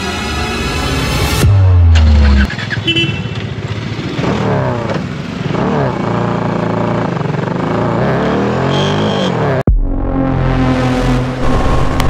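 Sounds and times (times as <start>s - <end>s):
motorcycle engine revving: 1.4s - 9.7s.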